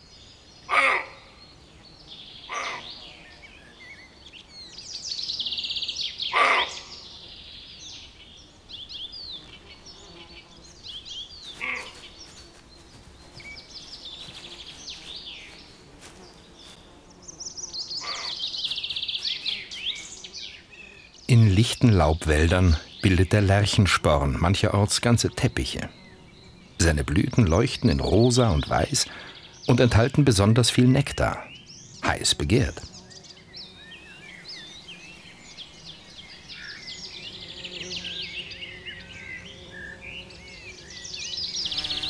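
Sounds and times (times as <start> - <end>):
songbirds trilling: 0.0 - 42.0
deer barking: 0.7 - 1.3, 6.3 - 6.9, 11.6 - 12.0.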